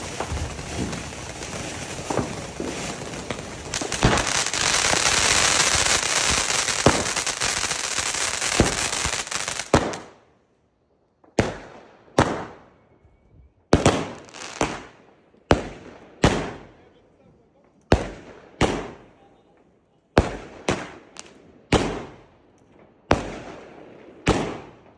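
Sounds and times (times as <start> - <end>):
firework fountain hissing: 0.0 - 9.7
firework bangs: 0.0 - 10.1, 13.7 - 16.7, 20.2 - 22.2.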